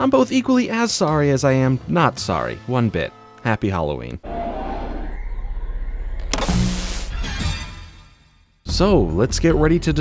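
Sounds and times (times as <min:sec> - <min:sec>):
low hum: 0:04.2 - 0:07.3
static hiss burst: 0:06.3 - 0:07.2.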